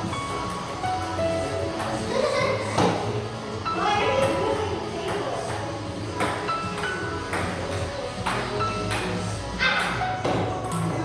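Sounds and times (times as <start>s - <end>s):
pop music: 0.0s - 11.0s.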